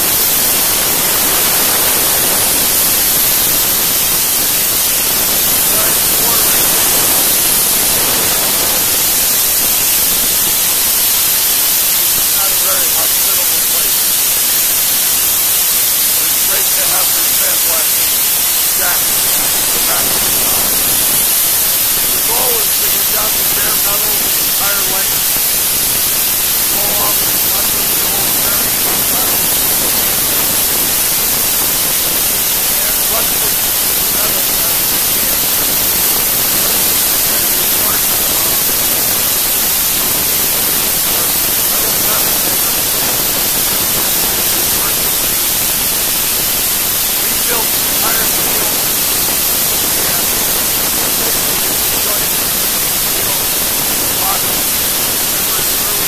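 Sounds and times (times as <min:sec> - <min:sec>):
sandblaster hissing on steel: 0:00.0 - 0:56.0.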